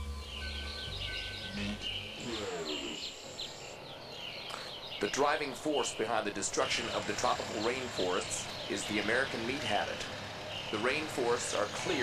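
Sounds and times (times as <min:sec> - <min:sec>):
low music drone: 0:00.0 - 0:04.4
birds chirping: 0:00.0 - 0:12.0.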